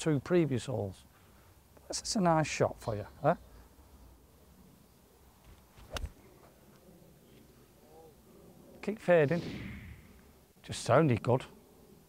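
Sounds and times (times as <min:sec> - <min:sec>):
golf club striking ball: 0:05.8 - 0:06.1.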